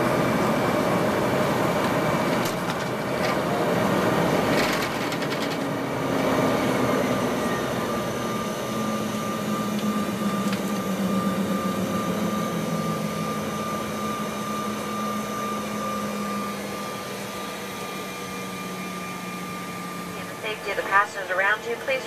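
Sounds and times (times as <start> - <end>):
jet engines whining: 0.0 - 22.0.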